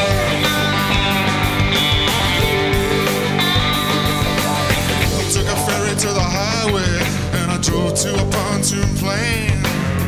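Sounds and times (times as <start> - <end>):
guitar accompaniment: 0.0 - 10.0
man singing into a microphone: 5.2 - 10.0.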